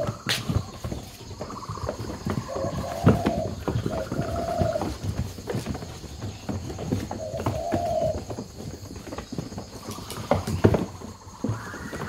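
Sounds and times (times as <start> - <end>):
birds knocking inside boxes: 0.0 - 12.0.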